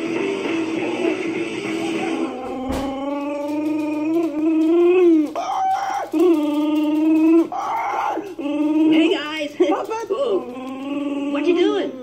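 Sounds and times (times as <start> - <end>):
long howling calls: 0.1 - 12.0.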